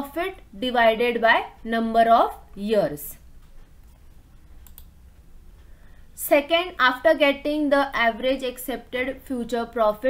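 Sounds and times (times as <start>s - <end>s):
computer mouse clicks: 3.4s - 5.7s.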